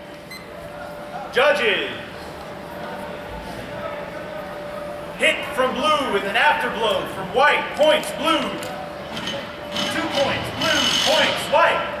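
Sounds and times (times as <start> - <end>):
men talking in echoing hall: 0.7 - 9.1, 9.7 - 12.0.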